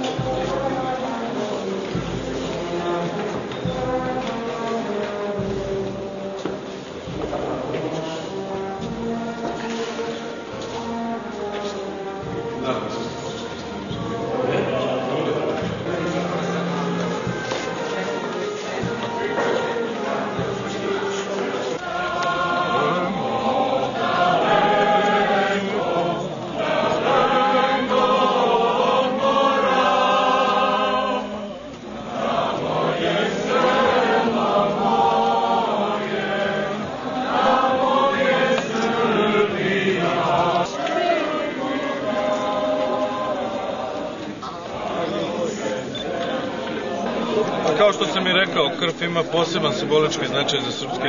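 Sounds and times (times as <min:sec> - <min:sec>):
group singing slow song: 0:00.0 - 0:48.7.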